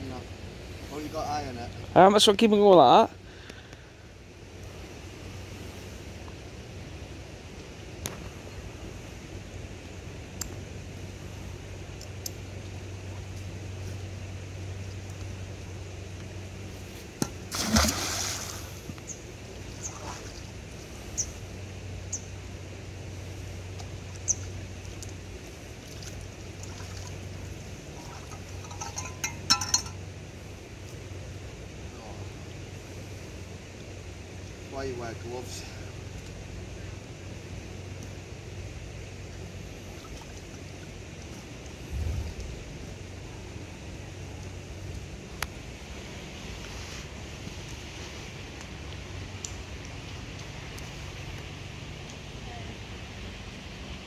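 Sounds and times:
steady low hum: 0:00.0 - 0:54.0
magnet splashing into water: 0:17.2 - 0:18.7
knocks and clinks: 0:28.6 - 0:30.0.

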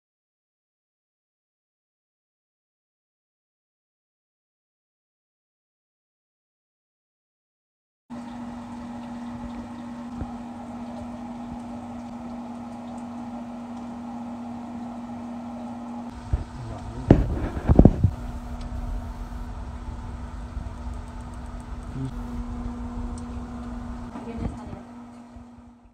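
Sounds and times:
steady mechanical hum: 0:08.1 - 0:25.9
low rumble: 0:16.2 - 0:24.8.

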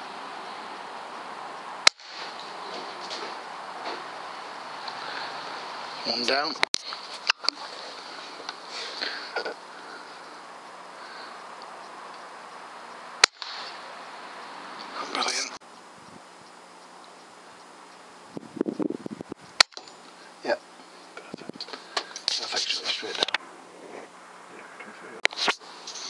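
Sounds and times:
background hiss: 0:00.0 - 0:26.0
air rifle shot: 0:01.8 - 0:02.3, 0:13.2 - 0:13.9.

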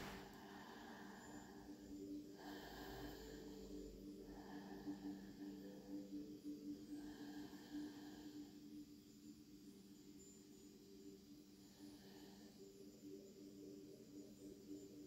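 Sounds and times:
faint low hum: 0:00.0 - 0:15.0
soft breaths: 0:00.0 - 0:15.0.

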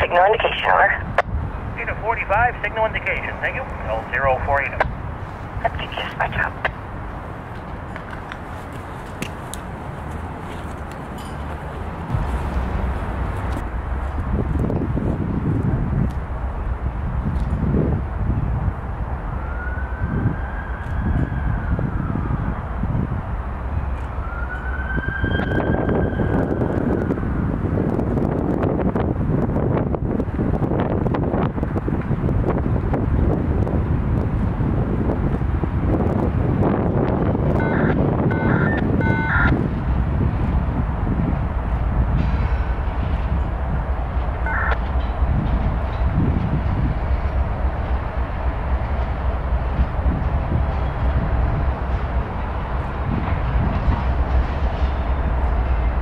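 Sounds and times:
diesel locomotive engines rumbling: 0:00.0 - 0:56.0.

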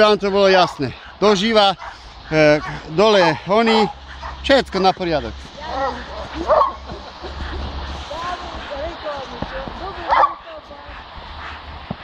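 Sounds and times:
dog barking: 0:01.8 - 0:02.0, 0:02.6 - 0:02.9, 0:03.6 - 0:04.4, 0:05.8 - 0:07.6, 0:10.0 - 0:10.4.

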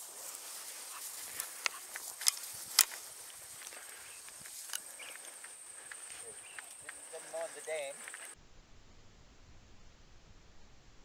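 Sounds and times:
footsteps through dry grass: 0:00.0 - 0:08.4.

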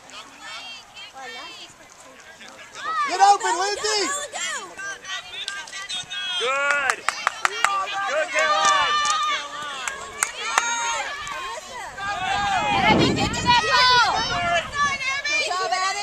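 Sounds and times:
spectators shouting: 0:02.6 - 0:16.0.

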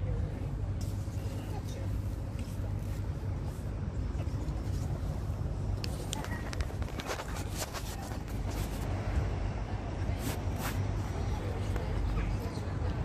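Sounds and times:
faint voices talking: 0:00.0 - 0:13.0
steady low rumble: 0:00.0 - 0:13.0.

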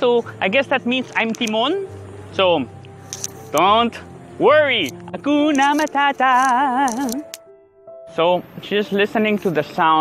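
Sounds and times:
man singing with vibrato: 0:05.2 - 0:07.3.

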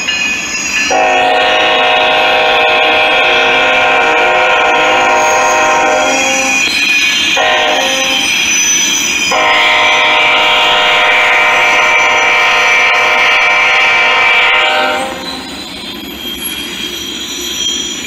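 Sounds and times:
freight cars rolling on rails: 0:00.0 - 0:18.0
high wheel squeal: 0:00.0 - 0:18.0
train air horn blast: 0:00.9 - 0:06.6, 0:07.4 - 0:08.3, 0:09.3 - 0:15.4.

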